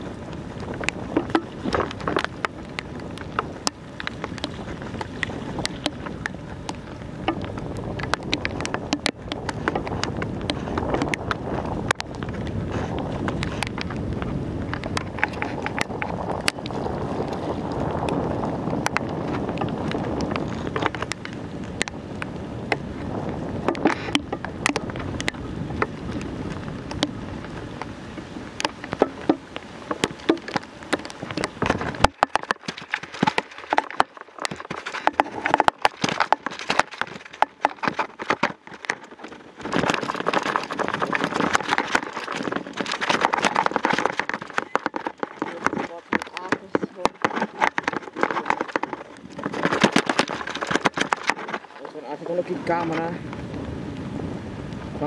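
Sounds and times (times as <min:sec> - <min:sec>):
wind buffeting microphone: 0:00.0 - 0:55.0
sharp clicks and rattles: 0:00.6 - 0:27.9, 0:28.5 - 0:53.2.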